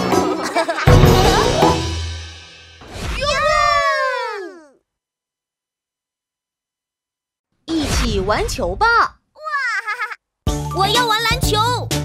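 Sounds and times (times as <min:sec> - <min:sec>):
children's song music: 0:00.0 - 0:02.8, 0:10.5 - 0:12.0.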